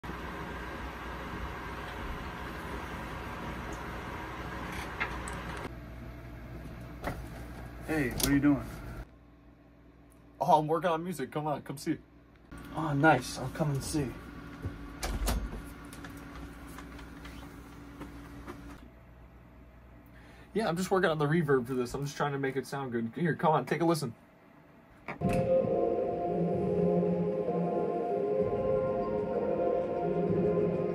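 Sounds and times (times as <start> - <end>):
room hum: 0.0 - 30.9
ambient electronic music: 25.2 - 30.9.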